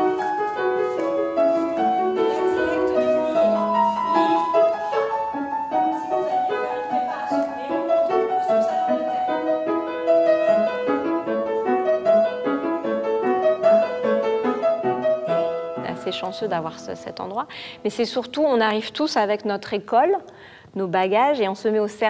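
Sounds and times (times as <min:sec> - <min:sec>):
piano melody over chords: 0:00.0 - 0:17.4.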